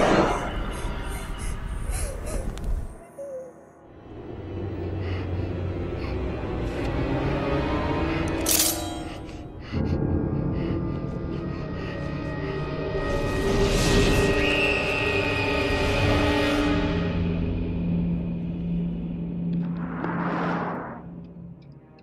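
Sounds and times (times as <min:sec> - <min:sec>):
eerie horror film score: 0:00.0 - 0:22.0.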